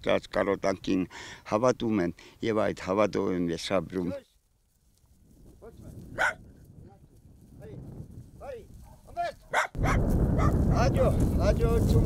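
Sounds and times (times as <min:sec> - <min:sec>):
wind buffeting microphone: 0:05.1 - 0:12.0
dog barking: 0:06.2 - 0:06.4, 0:08.8 - 0:10.6
man's voice: 0:10.7 - 0:12.0.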